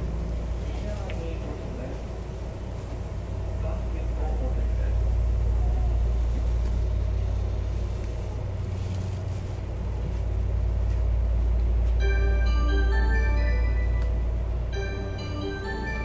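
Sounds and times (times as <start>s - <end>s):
train wheels rumbling on rail: 0.0s - 12.8s.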